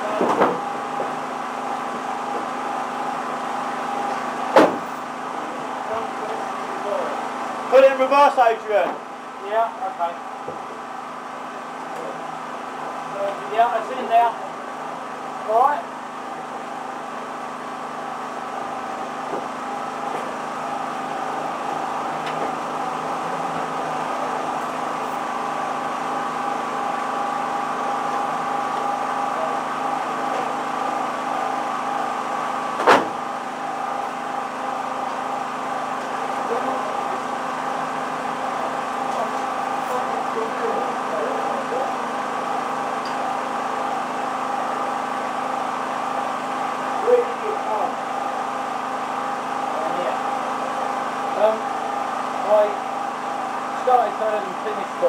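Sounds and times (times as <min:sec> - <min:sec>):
race car engine running: 0:00.0 - 0:55.0.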